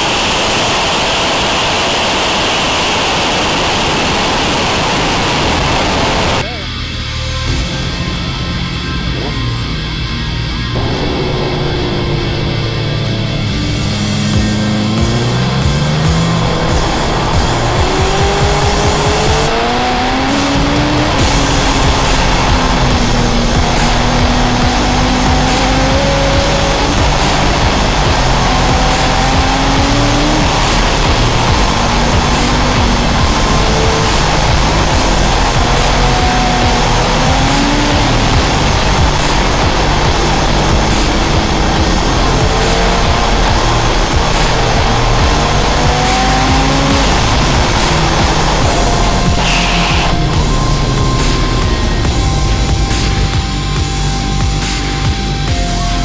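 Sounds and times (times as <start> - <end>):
wind rush: 0.0 - 6.4
motorcycle engine running: 0.0 - 56.0
loud rock music: 3.0 - 56.0.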